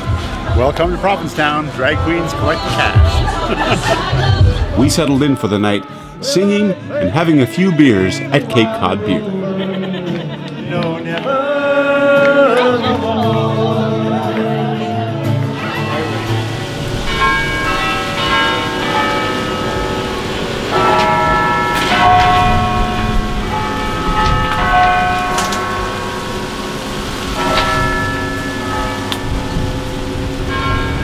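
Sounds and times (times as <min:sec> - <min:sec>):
bells ringing: 0:00.0 - 0:08.7, 0:15.5 - 0:31.0.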